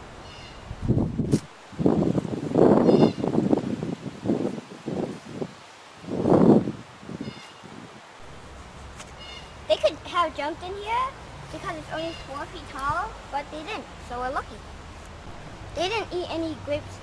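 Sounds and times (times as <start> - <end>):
leaves and vines rustling: 0.0 - 17.0.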